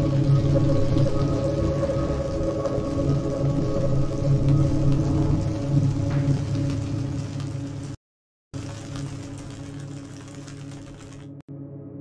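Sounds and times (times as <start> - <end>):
crackling chopped samples: 8.6 - 11.4.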